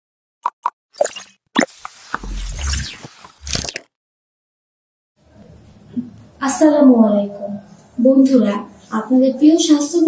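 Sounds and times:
plops and blips: 0:00.4 - 0:01.9.

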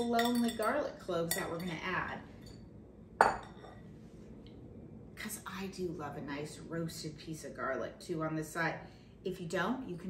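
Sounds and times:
glass bowl clinking on countertop: 0:00.0 - 0:02.6, 0:03.2 - 0:03.8.

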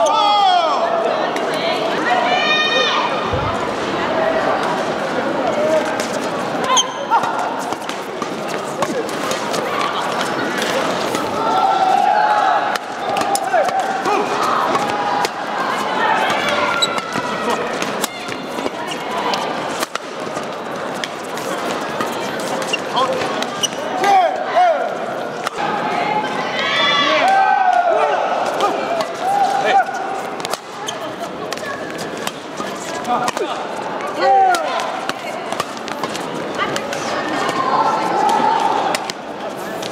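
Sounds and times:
voices chattering: 0:00.0 - 0:39.9
shoes squeaking on court floor: 0:05.8 - 0:11.3, 0:15.7 - 0:24.0, 0:29.9 - 0:34.2
rackets striking shuttlecock: 0:31.5 - 0:37.6.

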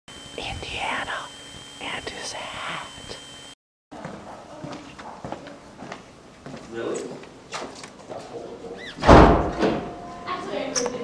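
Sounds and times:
person whispering: 0:00.4 - 0:03.2.

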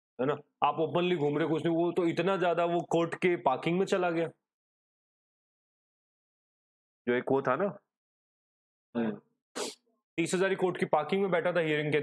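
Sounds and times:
man sneezing: 0:09.6 - 0:09.8.

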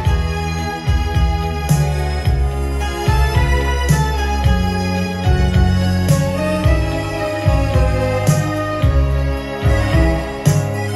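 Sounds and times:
pop song over speakers: 0:00.0 - 0:10.9.

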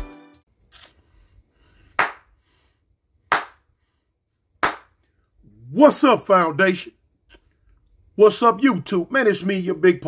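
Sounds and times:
sharp hand claps: 0:02.0 - 0:02.3, 0:03.3 - 0:03.6, 0:04.6 - 0:05.0.

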